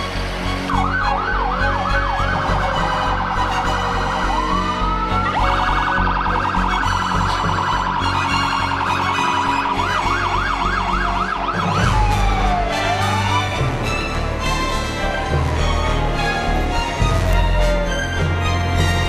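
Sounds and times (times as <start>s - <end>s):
electronic siren yelp and wail: 0.6s - 19.0s.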